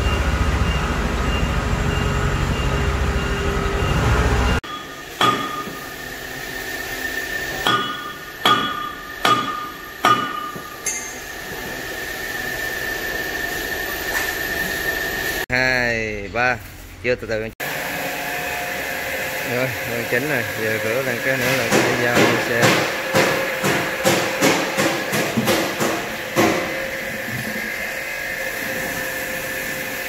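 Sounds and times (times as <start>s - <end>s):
hammer striking steel: 4.6s - 6.2s, 7.3s - 11.8s, 21.4s - 27.0s.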